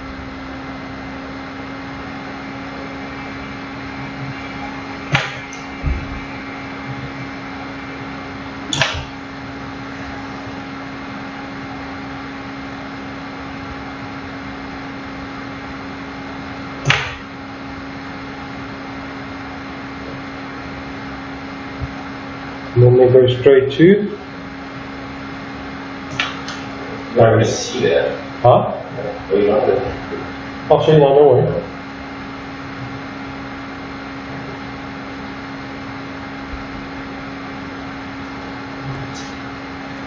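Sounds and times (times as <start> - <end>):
steady electrical hum: 0.0 - 40.0.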